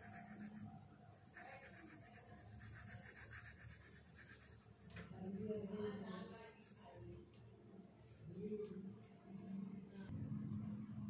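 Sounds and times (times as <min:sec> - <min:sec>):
pencil scratching on paper: 0:00.0 - 0:07.4.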